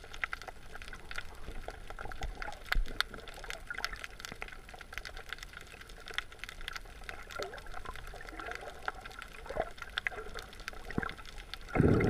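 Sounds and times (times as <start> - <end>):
small crackling clicks: 0.0 - 12.0
water bubbling underwater: 0.0 - 12.0.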